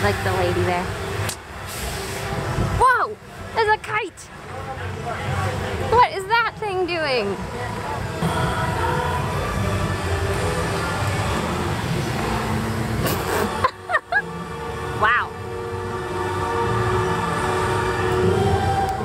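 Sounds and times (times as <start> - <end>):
music with voices: 3.6 - 19.0
steady low rumble: 4.2 - 19.0.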